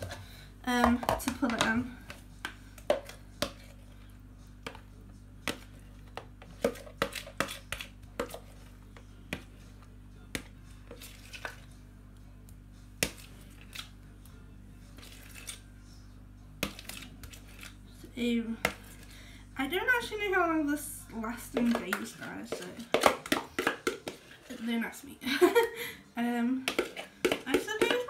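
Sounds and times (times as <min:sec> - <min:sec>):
steady low hum: 0:00.0 - 0:27.7
spoon knocking on plastic tub: 0:00.8 - 0:01.8.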